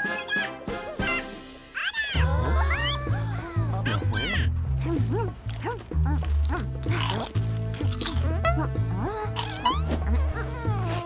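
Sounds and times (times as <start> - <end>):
background music with low bass: 2.2 - 11.0.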